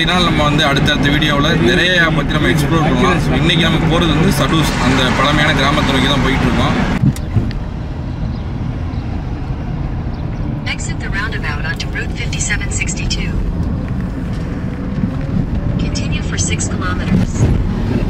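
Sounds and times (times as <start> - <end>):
man talking: 0.0 - 7.0
car cabin road rumble: 0.0 - 18.0.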